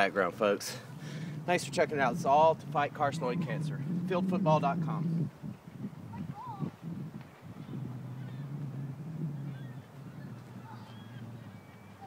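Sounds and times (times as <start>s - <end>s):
birds calling: 0.0s - 12.0s
low steady hum: 0.0s - 12.0s.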